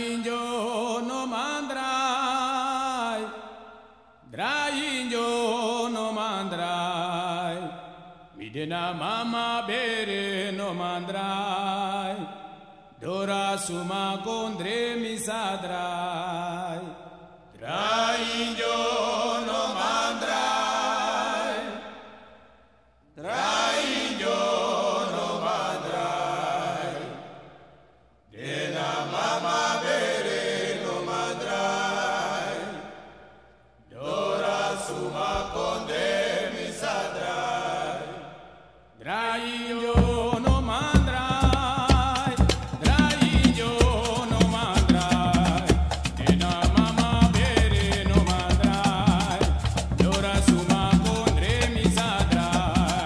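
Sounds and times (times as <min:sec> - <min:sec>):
men singing chant-like line: 0:04.3 - 0:22.1, 0:23.2 - 0:27.6, 0:28.3 - 0:33.3, 0:33.9 - 0:53.0.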